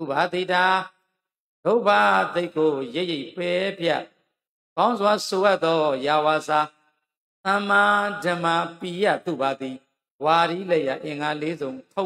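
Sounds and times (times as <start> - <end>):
man chanting into microphone: 0.0 - 1.0, 1.7 - 4.1, 4.8 - 6.8, 7.5 - 12.0.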